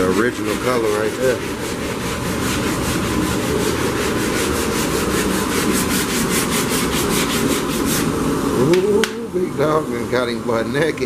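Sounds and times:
sanding car body: 0.0s - 8.5s.

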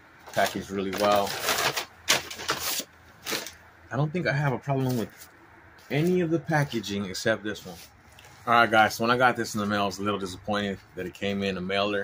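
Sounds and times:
packaging rustling and crinkling: 0.2s - 3.6s.

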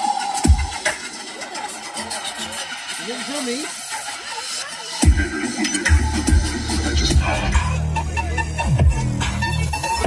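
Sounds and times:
electronic dance music with bass: 0.0s - 10.0s.

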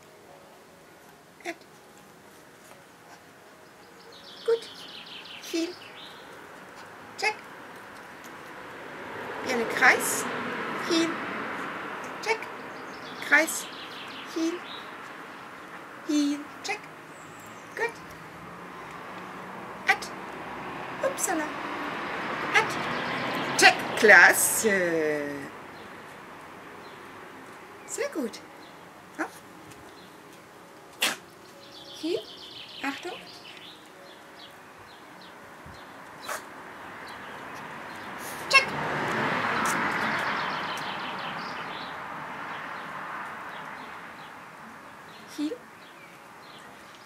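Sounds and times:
vehicle passing by: 4.2s - 47.0s
loud sharp snap: 31.0s - 31.2s.

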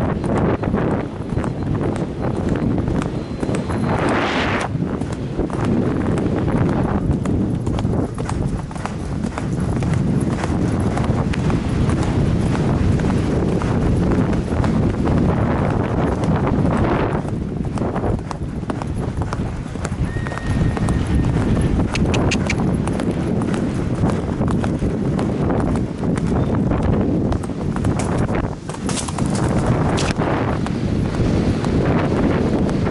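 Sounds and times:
horse hoofbeats on grass: 0.0s - 32.9s
wind on microphone: 0.0s - 32.9s.

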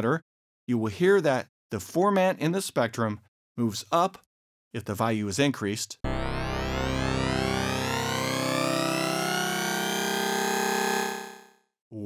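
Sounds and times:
synth note with rising formant: 6.1s - 11.5s.

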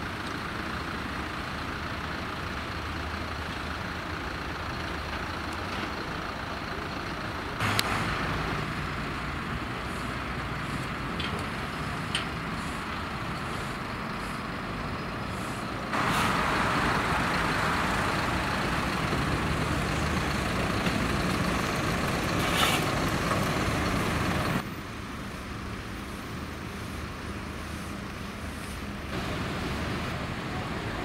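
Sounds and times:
road traffic noise: 0.0s - 31.0s
vehicle engines rumbling: 0.0s - 31.0s.

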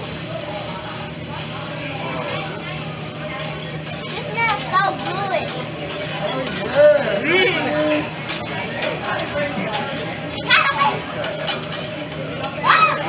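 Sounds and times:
restaurant room noise: 0.0s - 13.0s
children calling out and chattering: 0.1s - 13.0s.

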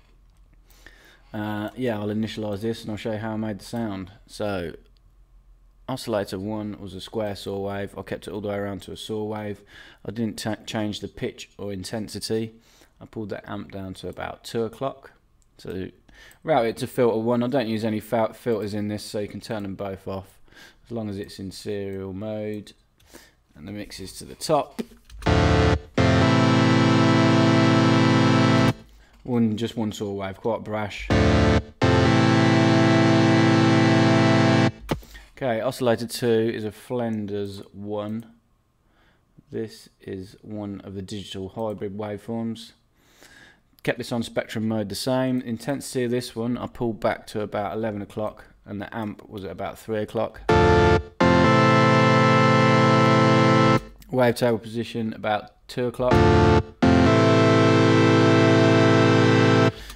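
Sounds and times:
bright saw wave synthesizer: 25.2s - 28.8s, 31.1s - 35.0s, 50.5s - 53.9s, 56.1s - 59.9s.

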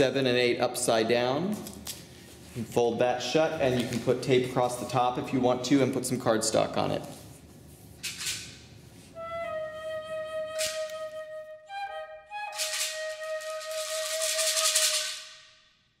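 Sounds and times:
flute holding long notes: 9.2s - 15.4s
shaker rattle: 12.4s - 15.5s.

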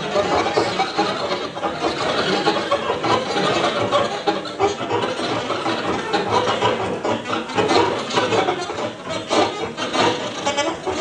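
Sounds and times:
experimental improvised music: 0.0s - 11.0s.

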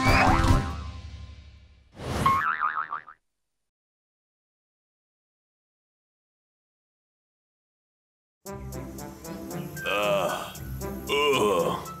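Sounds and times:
cartoon boing sound effect: 2.3s - 3.2s.

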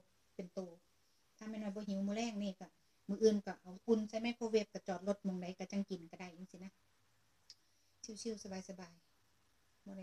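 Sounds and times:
woman speaking: 0.0s - 0.8s, 1.4s - 6.8s, 8.0s - 9.1s.

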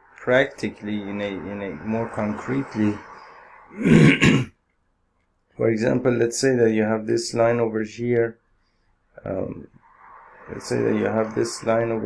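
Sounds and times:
man clearing his throat: 3.8s - 4.6s.

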